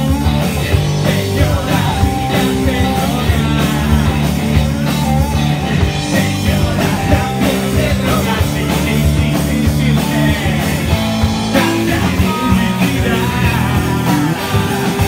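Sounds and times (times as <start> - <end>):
amplified singing vocals: 0.0 - 15.0
live rock band playing: 0.0 - 15.0.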